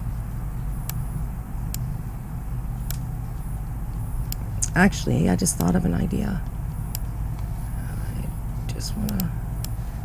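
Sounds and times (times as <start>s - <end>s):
steady low hum: 0.0s - 10.0s
computer mouse clicking: 2.8s - 3.1s, 5.5s - 5.8s, 9.0s - 9.8s.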